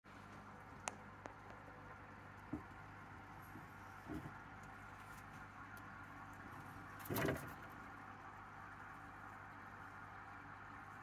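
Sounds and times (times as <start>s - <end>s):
faint electrical hum: 0.1s - 11.0s.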